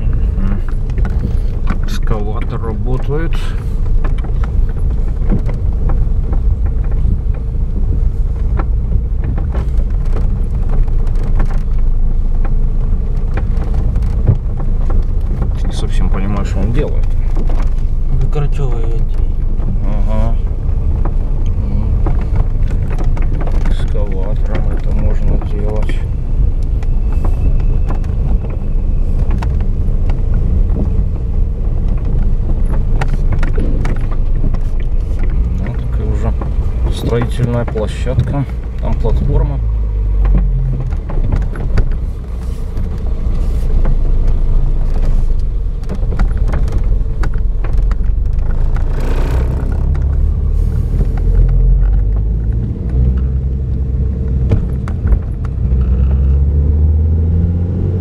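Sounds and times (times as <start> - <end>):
car knocks and rattles over bumps: 0.0 - 58.0
low rumble of engine and tyres: 0.0 - 58.0.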